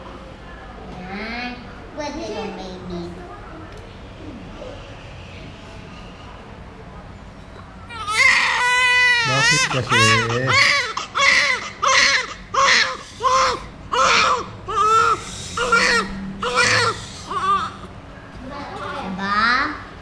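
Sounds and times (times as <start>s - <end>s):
newborn baby crying: 7.9s - 17.9s.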